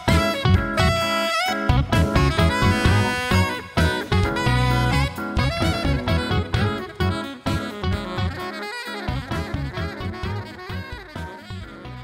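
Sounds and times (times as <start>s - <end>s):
baritone electric guitar with octaver: 0.0s - 12.0s
saxophone lead: 0.0s - 12.0s.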